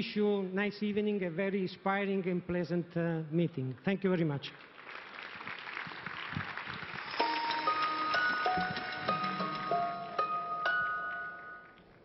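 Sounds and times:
applause: 4.4s - 10.3s, 11.0s - 12.0s
bell-like music notes: 7.1s - 11.8s.

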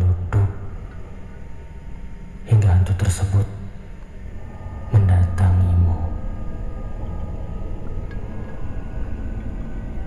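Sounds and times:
low rumbling drone: 0.0s - 10.0s
thin high tone: 4.2s - 10.0s.

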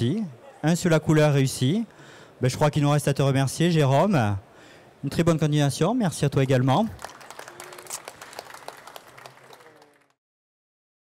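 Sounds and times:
audience applause: 6.9s - 10.2s.

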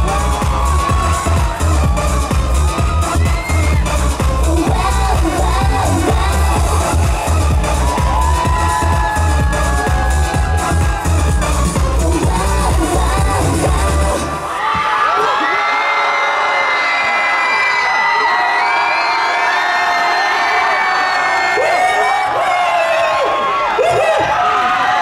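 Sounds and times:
dance track over speaker: 0.0s - 15.5s
crowd cheering and screaming: 0.0s - 25.0s.

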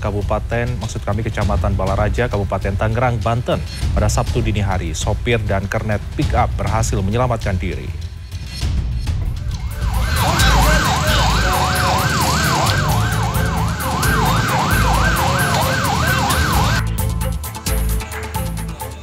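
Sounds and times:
music with low beat: 0.0s - 19.0s
siren yelping: 9.6s - 16.8s.

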